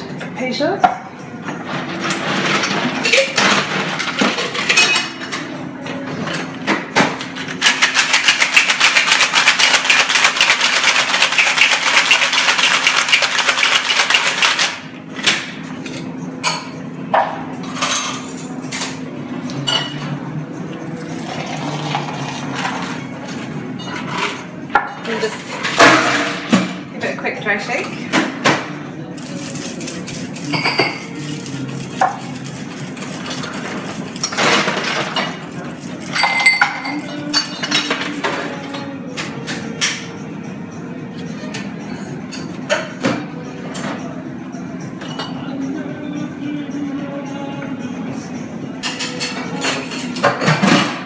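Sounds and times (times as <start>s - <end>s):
cocktail shaker rattling: 7.6s - 14.8s, 29.2s - 37.0s.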